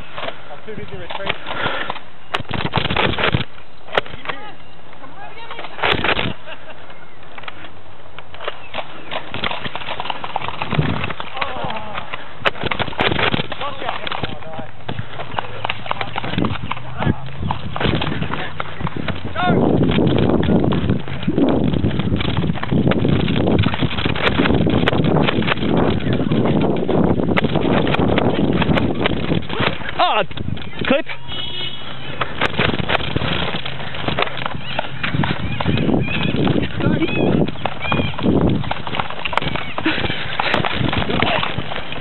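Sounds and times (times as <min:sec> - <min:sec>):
camera jostling: 0:00.0 - 0:04.4, 0:05.4 - 0:42.0
footsteps running on grass: 0:07.3 - 0:42.0.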